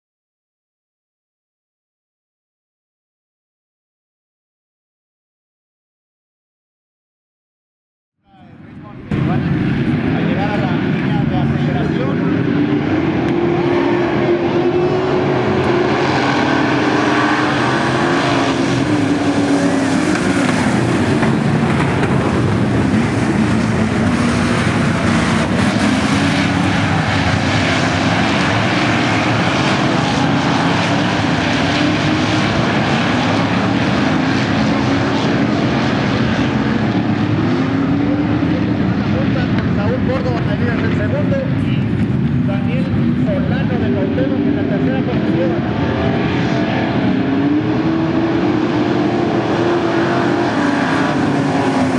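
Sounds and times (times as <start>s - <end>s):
race car engines roaring: 8.2s - 51.9s.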